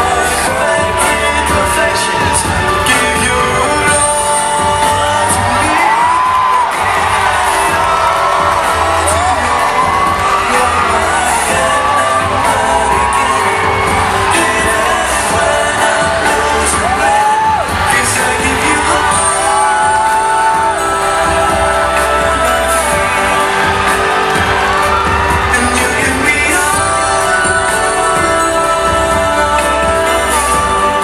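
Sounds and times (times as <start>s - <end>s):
men singing pop song: 0.0s - 31.0s
musical accompaniment: 0.0s - 31.0s.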